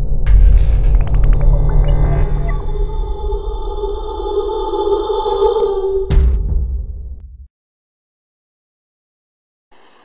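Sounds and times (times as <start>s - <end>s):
sustained synth drone: 0.0s - 6.1s
deep rumble: 0.0s - 7.2s.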